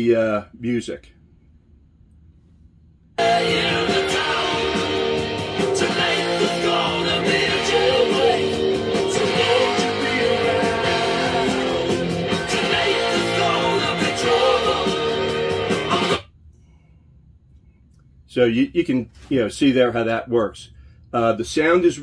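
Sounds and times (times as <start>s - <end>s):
song with guitar and singing: 3.2s - 16.2s.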